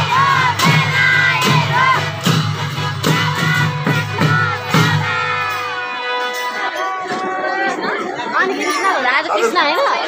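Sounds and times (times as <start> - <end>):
group of women: 0.0 - 10.0.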